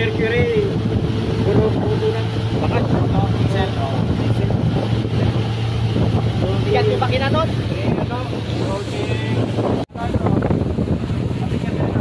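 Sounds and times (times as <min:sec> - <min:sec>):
outboard motor running: 0:00.0 - 0:12.0
water rushing past hull: 0:00.0 - 0:12.0
wind buffeting microphone: 0:00.0 - 0:12.0.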